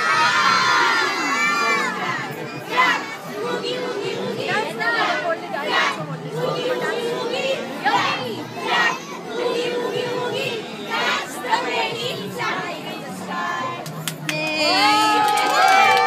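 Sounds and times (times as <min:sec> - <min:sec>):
young children chattering and shouting: 0:00.0 - 0:03.4.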